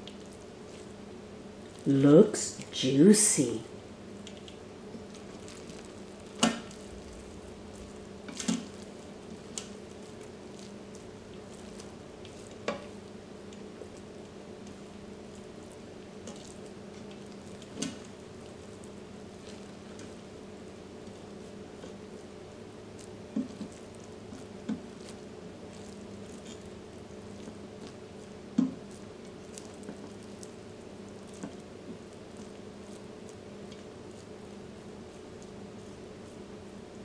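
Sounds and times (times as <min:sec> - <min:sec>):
steady low hum: 0:00.0 - 0:37.0
spatula scraping rice in pot: 0:23.1 - 0:28.0.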